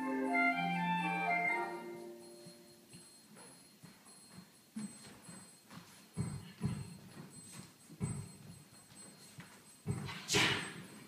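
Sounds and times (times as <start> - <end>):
feet stamping on wooden stage: 2.4 - 11.0.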